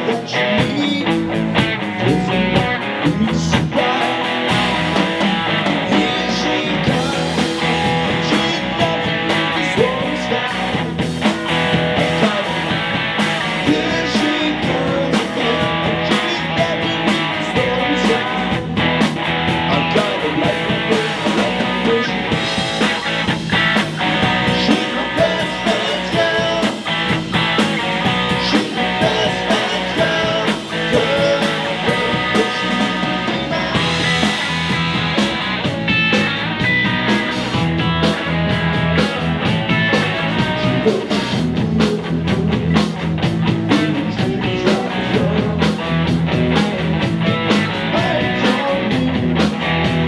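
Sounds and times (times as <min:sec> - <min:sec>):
bass guitar: 0:00.0 - 0:50.0
drum kit: 0:00.0 - 0:50.0
electric guitar: 0:00.0 - 0:50.0.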